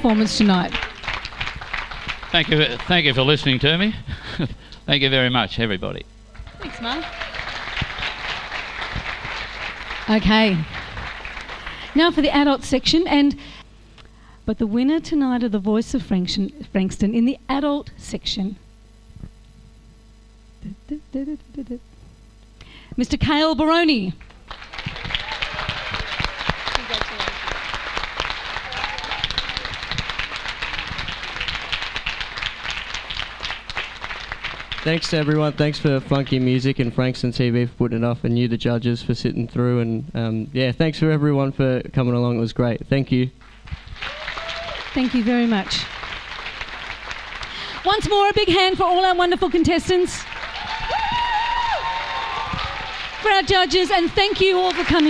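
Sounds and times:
crowd clapping: 0:00.0 - 0:04.4, 0:06.4 - 0:12.5, 0:24.2 - 0:37.0, 0:43.4 - 0:55.0.

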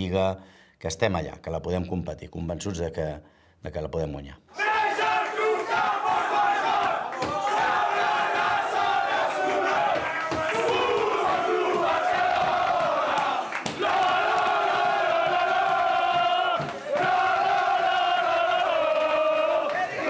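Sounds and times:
shouts and cheers: 0:04.5 - 0:20.0.

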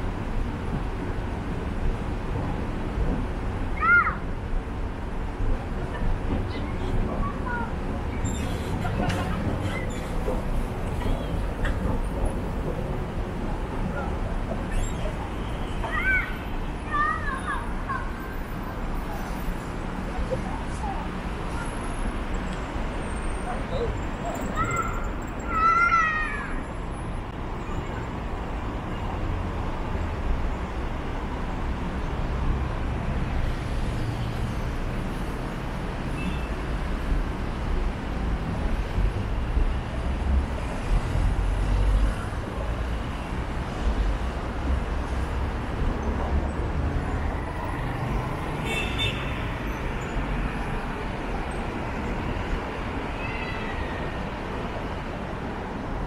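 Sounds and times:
road traffic rumble: 0:00.0 - 0:56.0.

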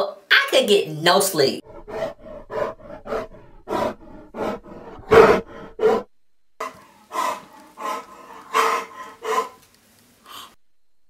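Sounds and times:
loud snoring snorts: 0:01.8 - 0:09.6.

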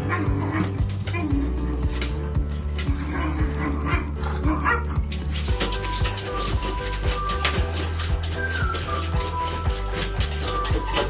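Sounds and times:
background music with steady beat: 0:00.0 - 0:11.0
puppies yipping and whining: 0:03.2 - 0:11.0.

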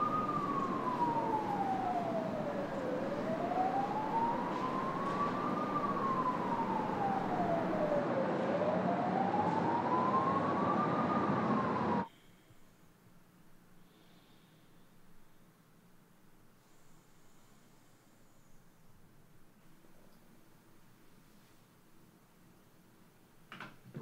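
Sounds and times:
emergency siren wailing: 0:00.0 - 0:12.1
steady rushing background noise: 0:00.0 - 0:12.1.

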